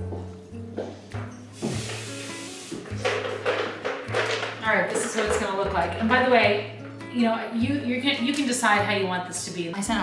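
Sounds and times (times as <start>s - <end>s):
background music: 0.0s - 10.0s
faucet water running into sink: 1.6s - 4.2s.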